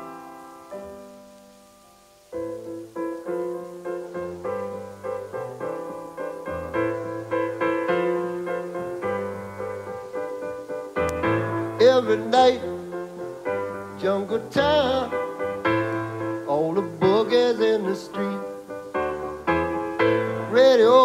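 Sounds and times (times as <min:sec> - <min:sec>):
solo piano: 0:00.0 - 0:21.0.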